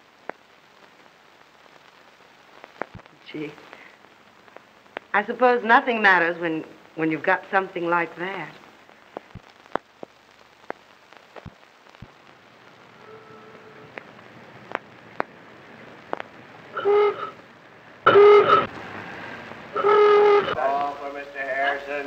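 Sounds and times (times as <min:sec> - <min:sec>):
film soundtrack clicks and hiss: 0:00.0 - 0:22.0
horn blasts: 0:12.9 - 0:13.9, 0:16.8 - 0:17.4, 0:18.1 - 0:18.7, 0:19.8 - 0:20.7.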